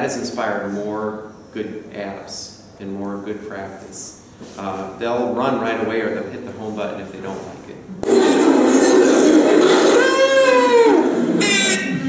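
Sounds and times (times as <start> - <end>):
busy room noise: 0.0 - 12.0
child crying out: 9.6 - 11.9.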